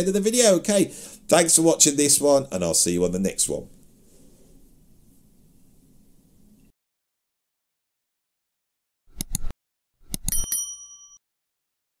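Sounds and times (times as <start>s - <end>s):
mouse clicks: 9.2s - 9.5s
bright bell ding: 10.3s - 11.2s.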